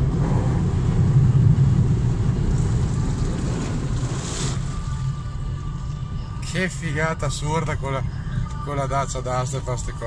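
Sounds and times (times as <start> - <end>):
engine and tyres in water: 0.0 - 5.7.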